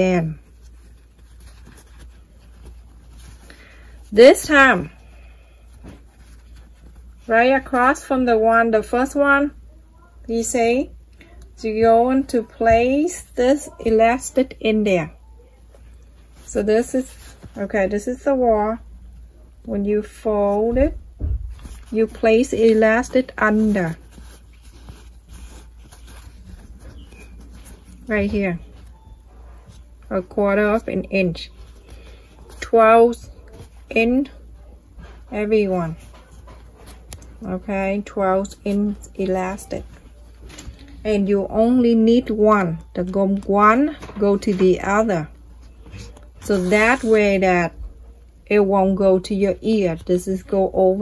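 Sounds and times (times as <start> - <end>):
fabric rustling: 0.0 - 8.9, 11.3 - 48.2
low steady hum: 0.0 - 51.0.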